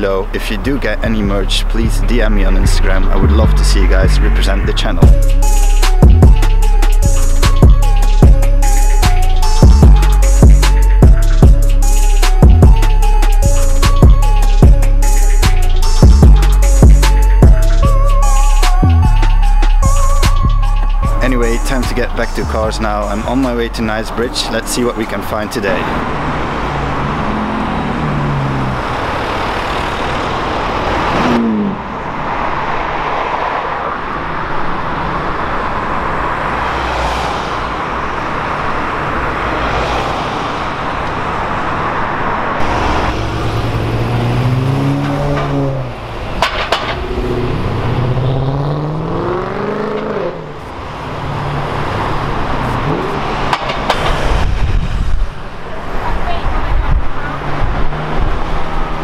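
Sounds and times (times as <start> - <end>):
sports car engines accelerating: 0.0 - 59.0.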